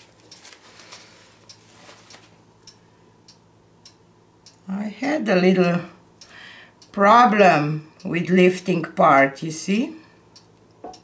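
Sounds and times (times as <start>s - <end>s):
paper napkin rustling and crinkling: 0.0s - 2.4s
faint steady ticking: 0.0s - 11.0s.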